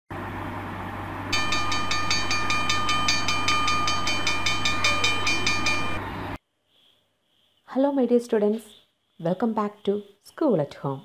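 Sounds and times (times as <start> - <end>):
rhythmic clatter: 1.3 - 6.0
held high tone: 1.3 - 6.1.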